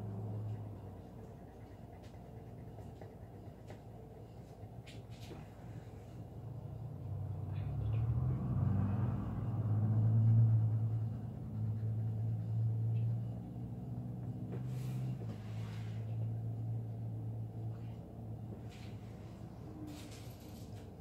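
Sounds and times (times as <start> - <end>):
mechanical engine rumble: 0.0 - 21.0.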